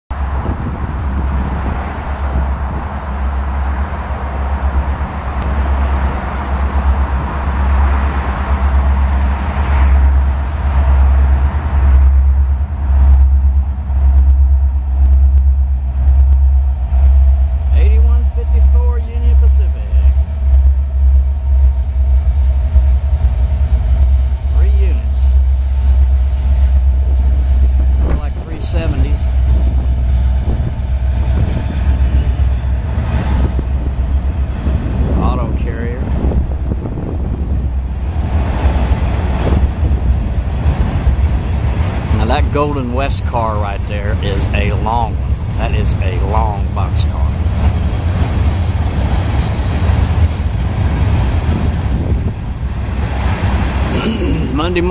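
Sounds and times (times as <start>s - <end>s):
diesel locomotives passing: 0.1s - 54.9s
freight cars rolling on rails: 0.1s - 54.9s.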